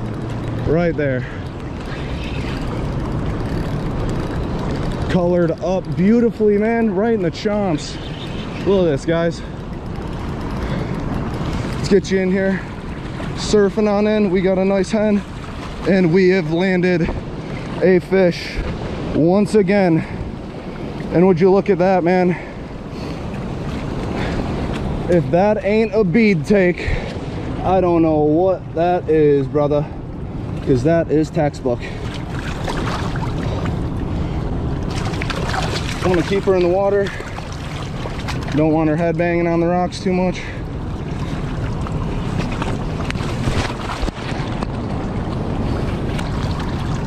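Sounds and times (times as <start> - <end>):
river water rushing and splashing: 0.0 - 47.0
wind buffeting microphone: 0.0 - 47.0.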